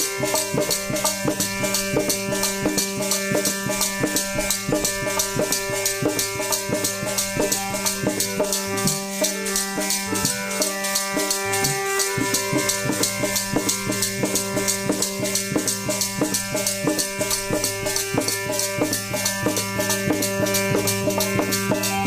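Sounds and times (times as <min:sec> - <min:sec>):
hand drum: 0:00.0 - 0:22.0
harmonium chords: 0:00.0 - 0:22.0.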